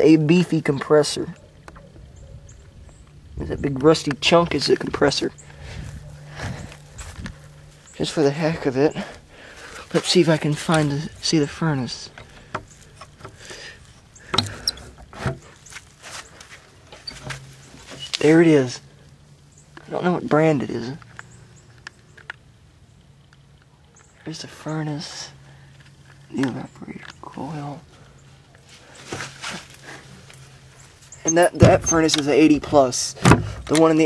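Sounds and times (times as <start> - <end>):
light scraping and rustling: 1.6 - 18.8, 25.3 - 34.0.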